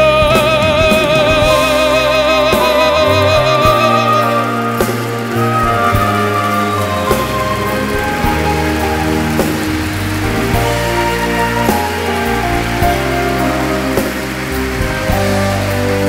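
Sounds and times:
audience applause: 0.0 - 16.0
live band playing: 0.0 - 16.0.

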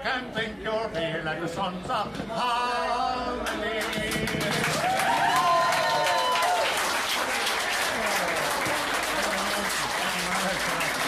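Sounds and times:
audience clapping and cheering: 3.4 - 11.0.

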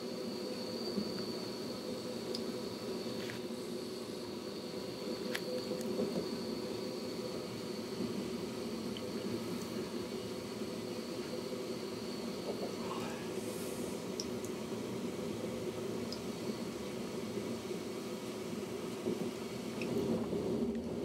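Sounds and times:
faint high whine: 0.0 - 20.9
train wheels rumbling on track: 0.0 - 21.0.

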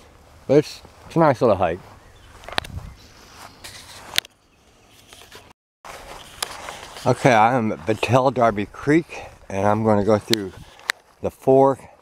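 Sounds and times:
faint outdoor background: 0.0 - 12.0
footsteps on grass: 0.0 - 12.0.

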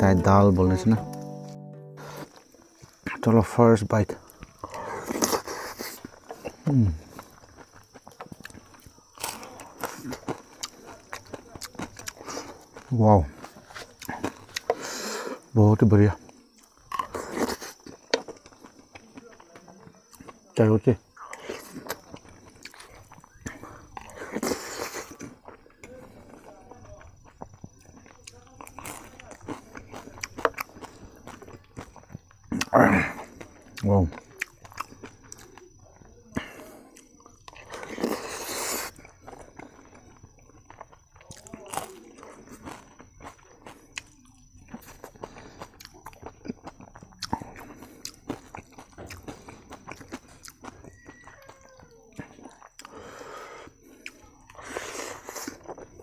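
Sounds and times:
person chewing food: 4.2 - 15.5, 16.2 - 20.5, 21.1 - 56.0.

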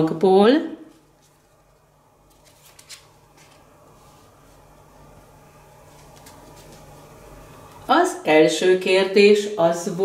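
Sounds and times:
cards sliding and flicking: 2.3 - 3.6.

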